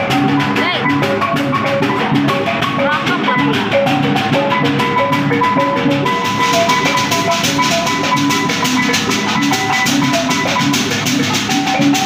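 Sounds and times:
fast drum beat: 0.0 - 12.0
gong-chime melody: 0.0 - 12.0.

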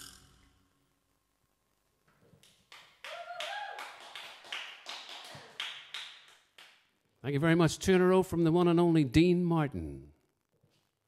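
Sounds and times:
wavering tone: 0.0 - 0.8.

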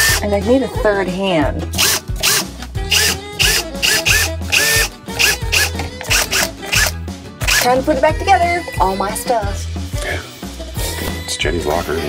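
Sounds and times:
cordless drill whining: 0.0 - 0.2, 1.7 - 7.8
background music with steady beat: 0.0 - 12.0.

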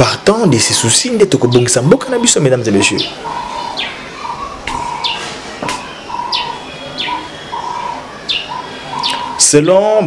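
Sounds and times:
bird chirping: 0.5 - 10.0.

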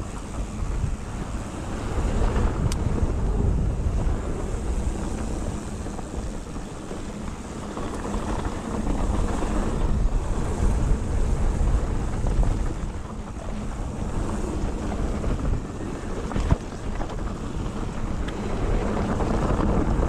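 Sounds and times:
bike tyres rolling on dirt: 0.0 - 20.0
wind buffeting microphone: 0.0 - 20.0.

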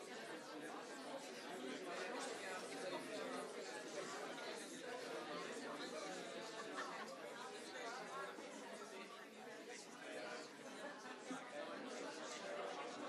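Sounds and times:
chatter of many people: 0.0 - 13.0.

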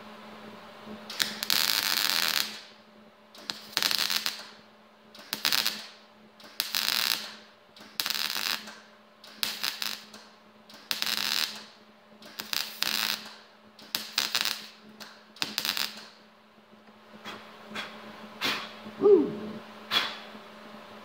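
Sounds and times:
welder arc crackling: 1.1 - 16.3.

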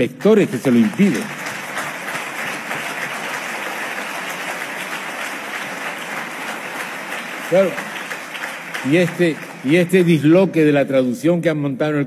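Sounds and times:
man talking: 0.0 - 1.3, 7.4 - 7.8, 8.8 - 12.0
audience applauding: 0.0 - 10.5.

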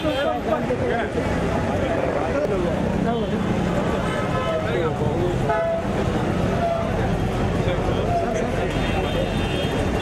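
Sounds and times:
voices talking: 0.0 - 10.0
car horn tooting: 8.6 - 10.0.

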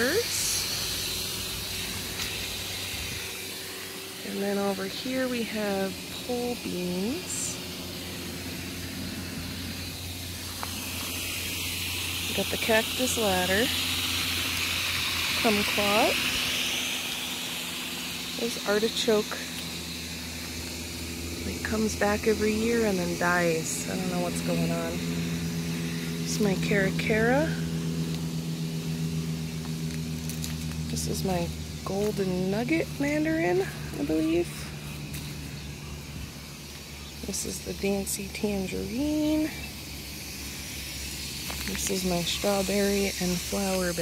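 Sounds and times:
outdoor hum and hiss: 0.0 - 44.0.

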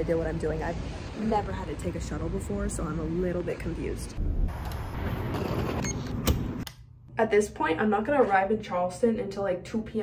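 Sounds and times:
low rumble of traffic: 0.0 - 5.3.

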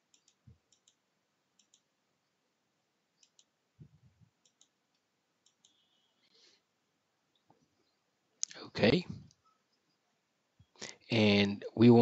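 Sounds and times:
computer mouse clicks: 0.0 - 1.0, 1.6 - 1.9, 3.2 - 3.6, 4.4 - 6.0.

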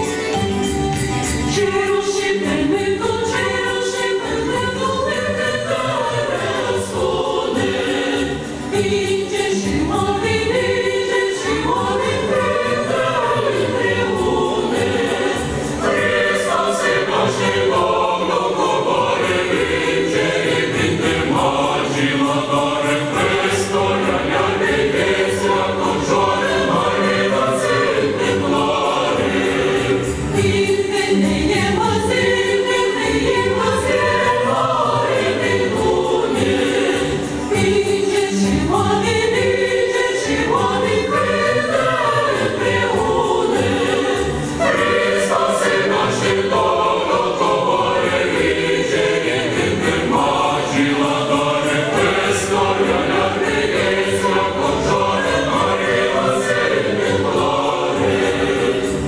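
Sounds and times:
mixed choir singing carol: 0.0 - 59.0.

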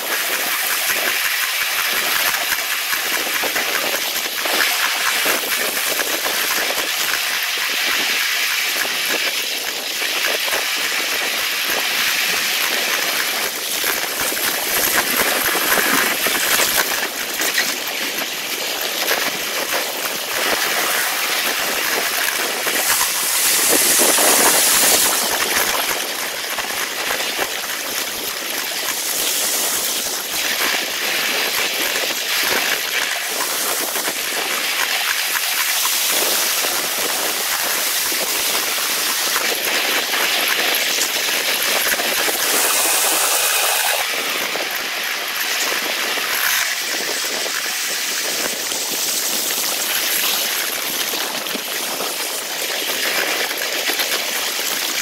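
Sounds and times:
miniature train wheels clattering on rails: 0.0 - 55.0
wind: 0.0 - 55.0.

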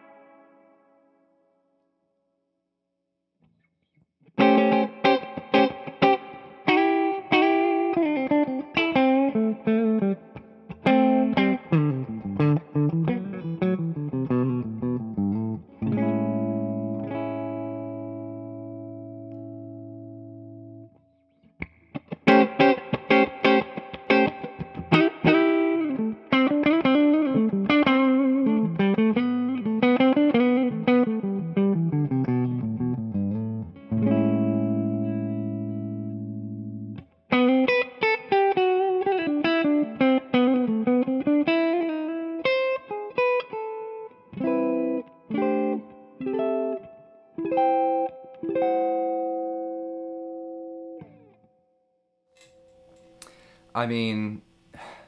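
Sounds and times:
electric guitar lead runs and chords: 4.3 - 20.9, 21.6 - 51.5.

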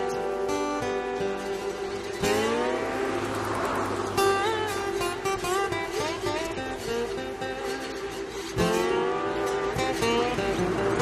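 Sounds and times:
guitar music: 0.0 - 11.0.

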